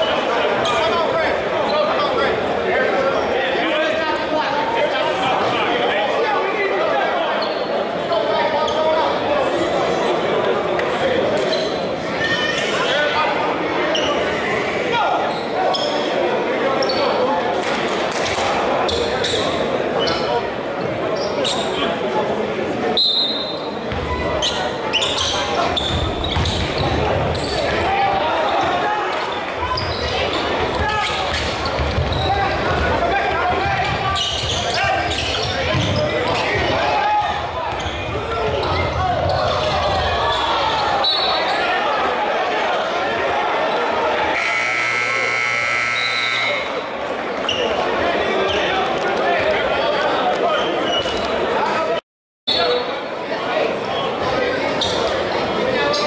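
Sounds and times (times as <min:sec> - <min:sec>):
crowd chatter: 0:00.0 - 0:56.0
high sneaker squeaks: 0:07.4 - 0:07.8, 0:11.4 - 0:12.9, 0:15.2 - 0:16.2, 0:16.8 - 0:17.2, 0:18.8 - 0:21.9, 0:23.0 - 0:27.8, 0:29.7 - 0:32.6, 0:33.9 - 0:36.6, 0:37.7 - 0:41.8, 0:47.4 - 0:47.8, 0:50.5 - 0:51.3, 0:52.5 - 0:52.9, 0:54.7 - 0:55.1.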